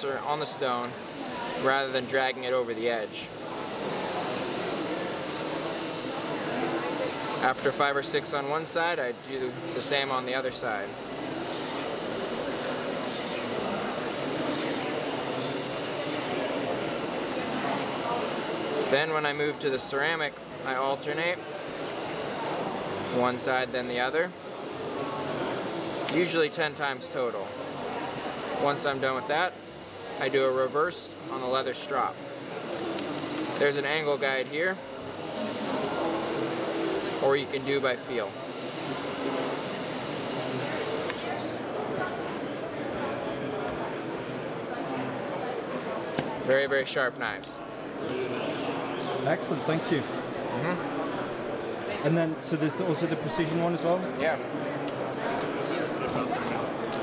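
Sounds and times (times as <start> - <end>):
crowd chatter: 0.0 - 57.0.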